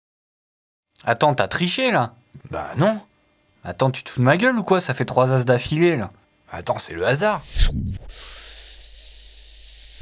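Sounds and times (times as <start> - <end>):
faint low hum: 1.0 - 10.0
hiss made by mouth: 7.4 - 10.0.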